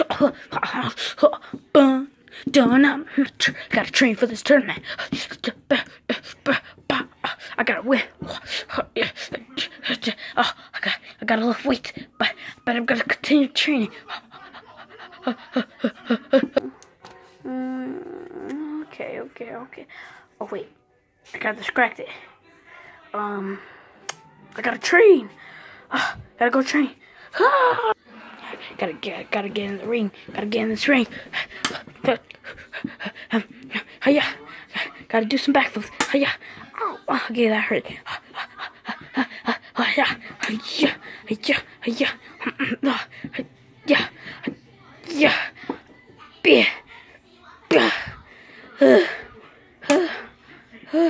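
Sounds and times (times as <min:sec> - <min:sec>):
child panting: 0:04.7 - 0:12.7, 0:13.7 - 0:16.8, 0:28.1 - 0:35.2, 0:35.8 - 0:44.5.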